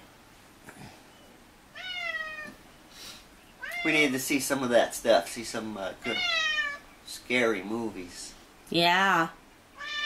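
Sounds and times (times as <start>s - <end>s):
cat meowing: 1.7s - 2.6s, 3.6s - 4.2s, 6.0s - 6.8s, 9.8s - 10.0s.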